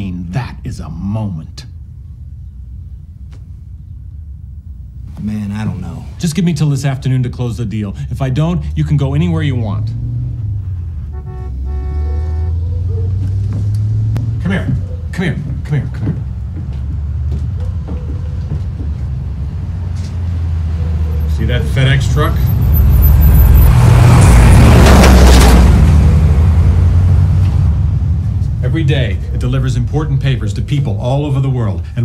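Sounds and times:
steady low rumble: 0.0s - 11.7s, 25.4s - 32.0s
truck driving past: 7.7s - 31.4s
van horn honking: 10.8s - 14.1s.

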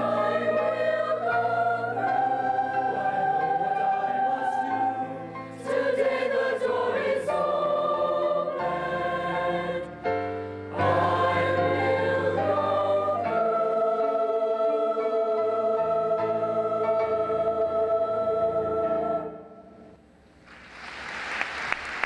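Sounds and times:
mixed choir singing held chords: 0.0s - 20.0s.

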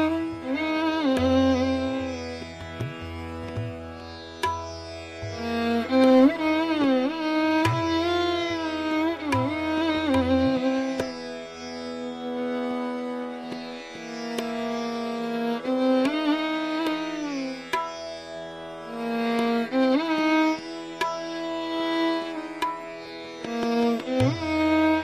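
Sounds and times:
violin with sliding bowed notes: 0.0s - 25.0s.

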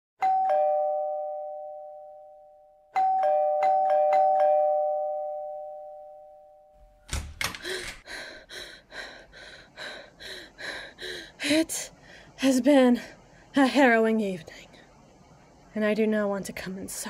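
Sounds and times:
two-tone doorbell chime: 0.2s - 6.8s.

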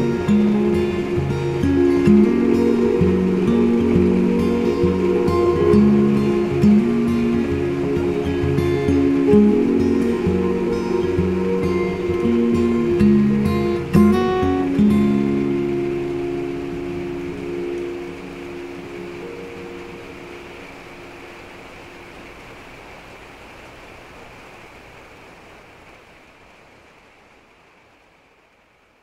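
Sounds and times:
acoustic guitar chord ringing: 0.0s - 21.4s
steady hiss: 0.0s - 29.0s.

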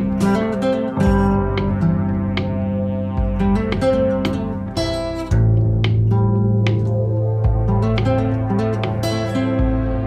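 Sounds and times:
acoustic guitar picking and strumming: 0.0s - 10.0s
steady bass line: 0.0s - 10.0s.

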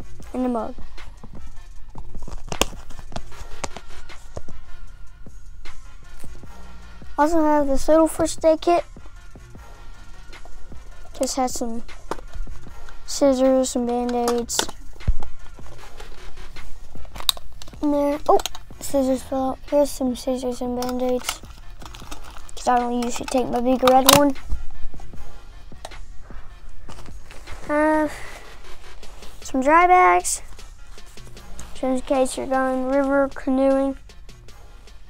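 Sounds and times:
metal tin clicking and scraping: 10.4s - 16.4s, 17.0s - 19.2s, 19.8s - 24.5s
collapsible mug clicking and knocking: 20.8s - 24.3s.

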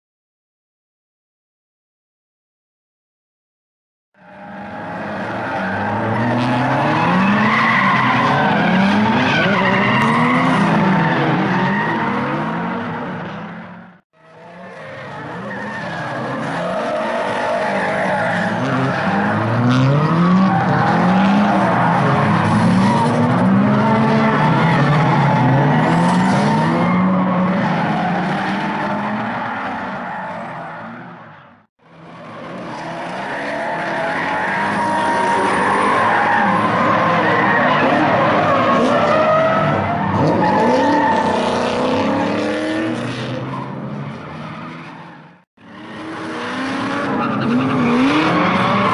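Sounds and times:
car engines revving: 4.2s - 48.9s
tyres squealing and skidding: 4.2s - 48.9s.

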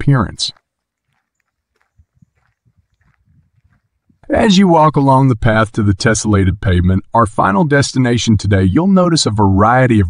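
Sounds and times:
footsteps on dirt path: 0.0s - 4.4s.

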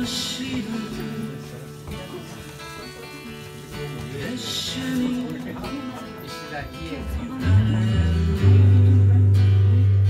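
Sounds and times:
acoustic guitar strumming: 0.0s - 10.0s
bass guitar playing: 7.0s - 10.0s.

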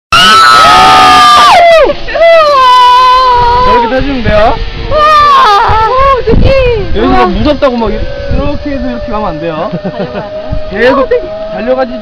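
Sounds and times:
people yelling: 0.1s - 12.0s.

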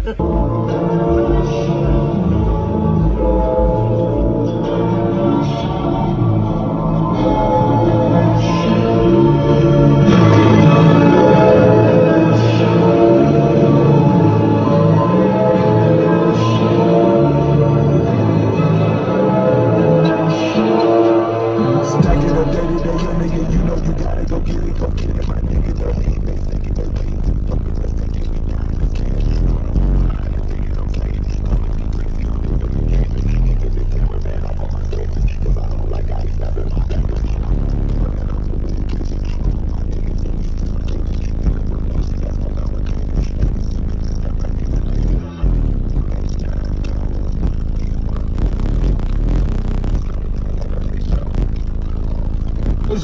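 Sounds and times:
bass-heavy music through subwoofers: 0.0s - 53.0s.

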